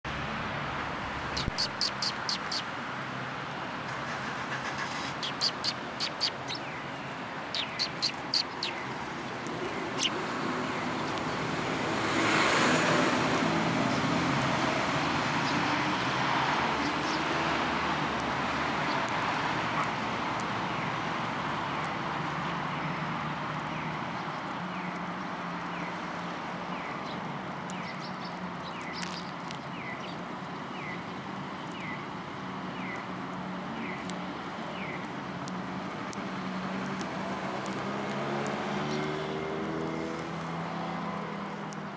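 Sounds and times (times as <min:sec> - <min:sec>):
vehicle passing by: 0:00.1 - 0:24.2, 0:32.4 - 0:41.9
sparrow chirping: 0:01.3 - 0:02.7, 0:04.6 - 0:10.2, 0:26.7 - 0:31.0, 0:34.7 - 0:35.1.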